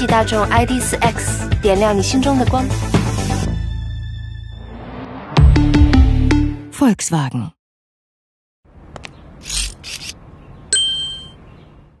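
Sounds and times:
bright metallic ding: 10.8s - 11.4s.

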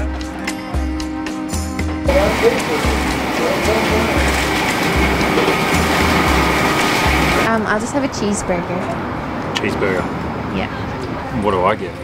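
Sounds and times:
background music with deep bass: 0.0s - 7.5s
steady kitchen hum: 2.1s - 7.6s
indistinct chatter: 2.1s - 12.0s.

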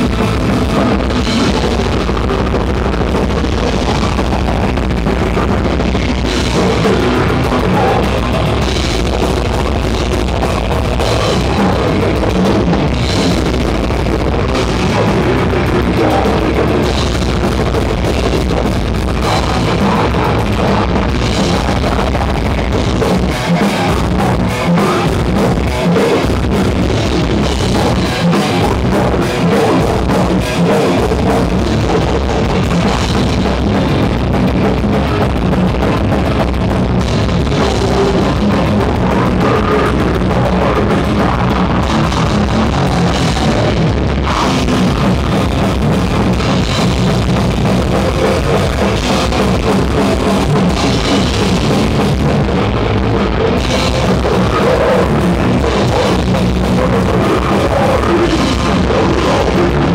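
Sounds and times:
distorted electric guitars: 0.0s - 59.9s
fast drum kit: 0.0s - 59.9s.

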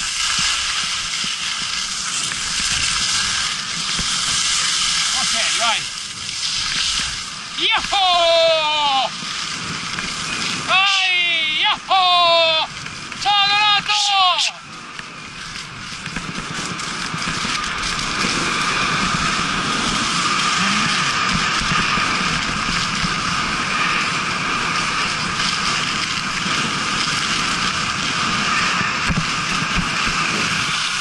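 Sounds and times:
rushing air: 0.0s - 31.0s
skis hissing on snow: 0.0s - 31.0s
wind on microphone: 0.0s - 31.0s.

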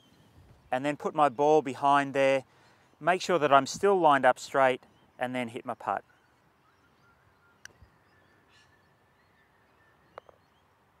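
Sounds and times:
faint bird chirps: 4.8s - 10.8s.

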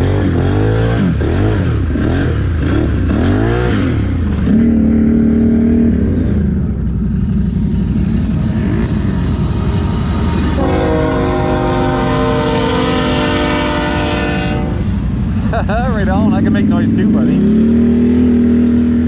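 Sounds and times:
atv engine revving: 0.0s - 19.0s
locomotive air horn chord: 10.4s - 15.2s.

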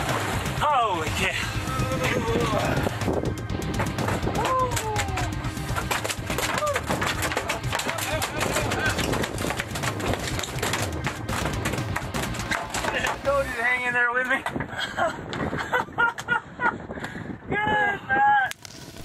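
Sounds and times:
background music: 0.0s - 14.2s
people yelling and whooping: 4.3s - 5.4s, 6.5s - 7.0s
fish thrashing on deck: 5.7s - 13.5s.

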